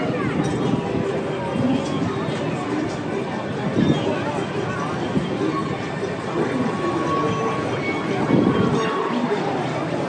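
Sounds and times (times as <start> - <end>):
ride cars rolling rumble: 0.0 - 10.0.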